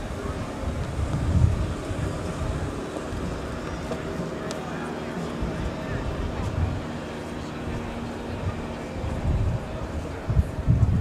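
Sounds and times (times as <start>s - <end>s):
murmur of distant voices: 0.0s - 11.0s
wind buffeting microphone: 0.0s - 11.0s.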